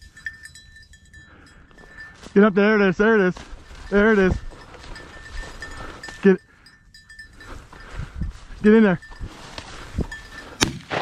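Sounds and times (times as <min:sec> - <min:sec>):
shotgun shot: 0:10.6 - 0:11.0.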